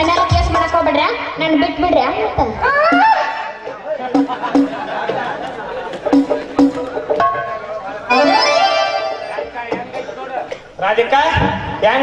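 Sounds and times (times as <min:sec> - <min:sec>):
harmonium playing: 0:04.2 - 0:10.5.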